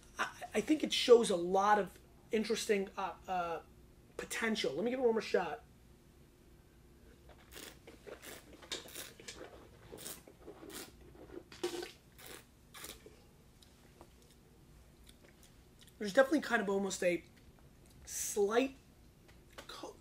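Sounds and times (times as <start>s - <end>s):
person spitting into bucket: 7.4s - 13.1s.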